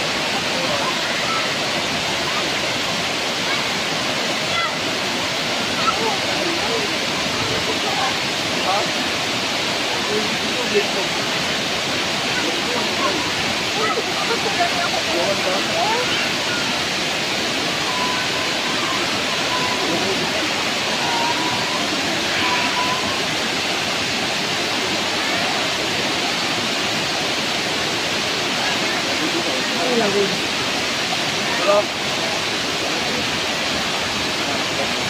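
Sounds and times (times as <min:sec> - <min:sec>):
waterfall roaring: 0:00.0 - 0:35.0
faint voices: 0:09.7 - 0:35.0.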